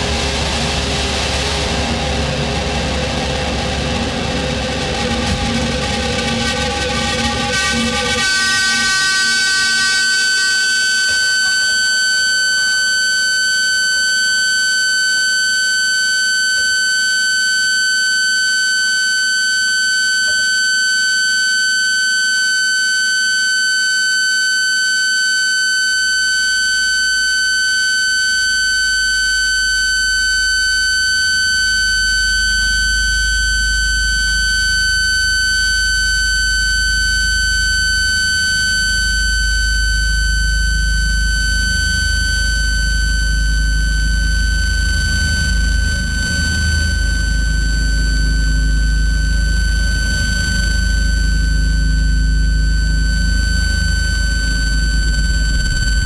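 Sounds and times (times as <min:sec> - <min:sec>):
deep bass drone: 0:00.0 - 0:11.8, 0:28.8 - 0:56.0
high electronic tone: 0:00.0 - 0:51.6, 0:52.4 - 0:56.0.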